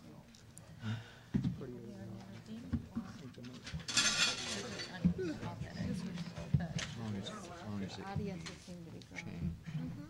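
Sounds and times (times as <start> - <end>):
people chattering: 4.2 - 10.0.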